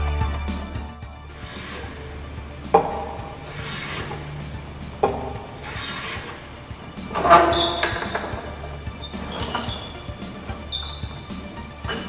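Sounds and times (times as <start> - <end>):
wood scraping on wood: 1.3 - 12.0.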